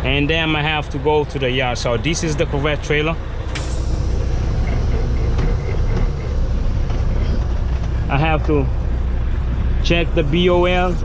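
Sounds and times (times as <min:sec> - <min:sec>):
diesel truck engine rumble: 0:00.0 - 0:11.0
air hissing: 0:03.5 - 0:11.0.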